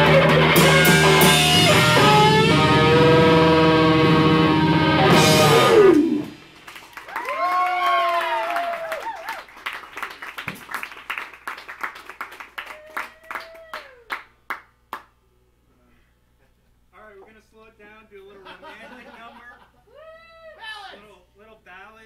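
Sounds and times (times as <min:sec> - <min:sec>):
rock song: 0:00.0 - 0:06.5
audience cheering: 0:05.2 - 0:11.7, 0:12.5 - 0:14.3
audience clapping: 0:05.9 - 0:15.2
whooping shout: 0:07.1 - 0:09.5, 0:12.6 - 0:14.2, 0:19.9 - 0:21.0.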